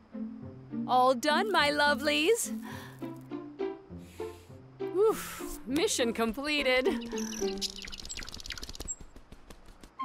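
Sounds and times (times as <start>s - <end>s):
light background music: 0.0s - 8.4s
small birds chirping: 5.4s - 9.3s.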